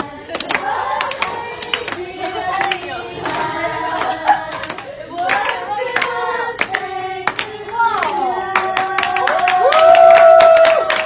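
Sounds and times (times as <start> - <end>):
group of people singing: 0.0 - 9.7
hand claps: 3.9 - 11.0.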